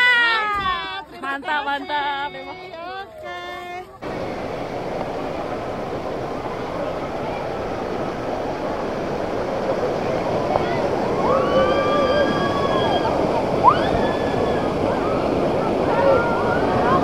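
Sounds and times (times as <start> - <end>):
voices calling out: 3.8 - 17.0
rushing whitewater: 4.0 - 17.0.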